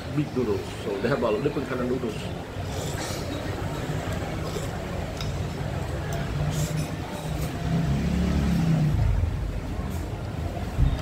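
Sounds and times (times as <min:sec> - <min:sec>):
vehicle engine passing: 0:07.4 - 0:09.9.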